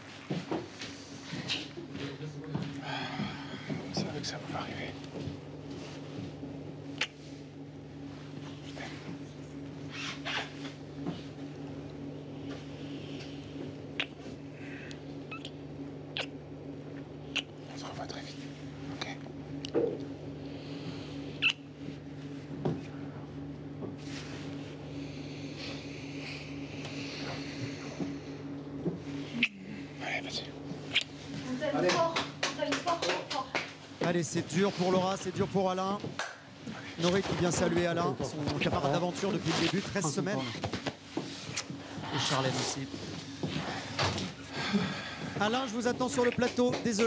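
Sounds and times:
steady low hum: 0:00.0 - 0:47.0
wet lip smacks: 0:06.9 - 0:07.2, 0:14.0 - 0:14.3, 0:15.3 - 0:16.4, 0:17.3 - 0:17.5, 0:21.4 - 0:21.6, 0:29.4 - 0:29.6, 0:30.8 - 0:31.2, 0:41.5 - 0:41.7
people talking: 0:31.5 - 0:36.1, 0:37.0 - 0:40.6, 0:45.4 - 0:47.0.

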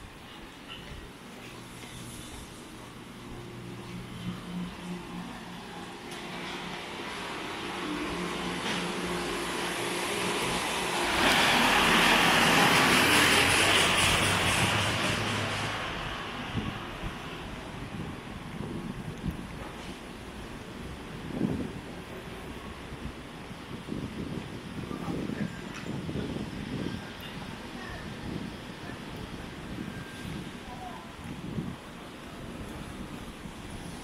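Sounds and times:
motor vehicle passing: 0:06.3 - 0:16.7.

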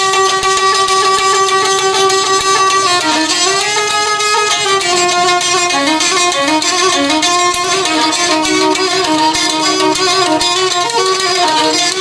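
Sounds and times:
folk violin holding long note: 0:00.0 - 0:12.0
rhythmic accompaniment: 0:00.0 - 0:12.0.

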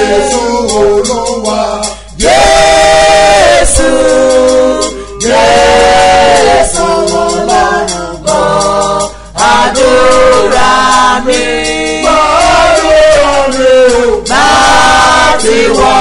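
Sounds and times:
unaccompanied gospel singing: 0:00.0 - 0:16.0
singer breathing: 0:04.9 - 0:05.2, 0:09.1 - 0:09.4.

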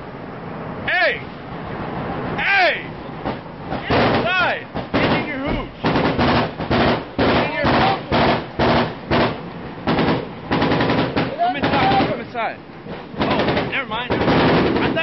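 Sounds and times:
automatic gunfire bursts: 0:03.9 - 0:12.2, 0:13.2 - 0:15.0.

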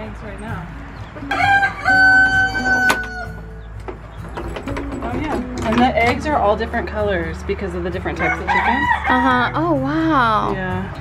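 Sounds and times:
rooster crowing: 0:01.2 - 0:03.5, 0:08.2 - 0:09.3.

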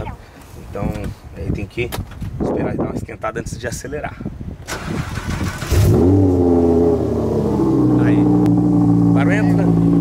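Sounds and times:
car engine starting and idling: 0:04.6 - 0:10.0.

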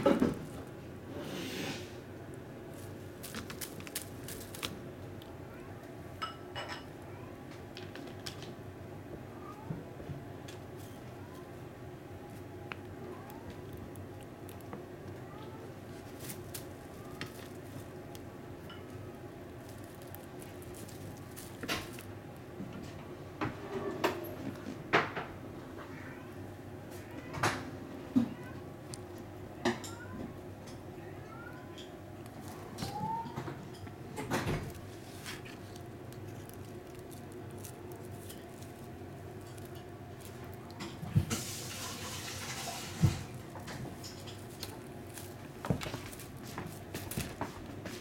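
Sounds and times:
kittens scuffling on wooden floor: 0:00.0 - 0:05.3, 0:12.3 - 0:24.8, 0:32.2 - 0:48.0
low room hum: 0:00.0 - 0:48.0
high rustling of tinsel: 0:02.7 - 0:04.8, 0:15.9 - 0:22.2, 0:34.6 - 0:48.0.

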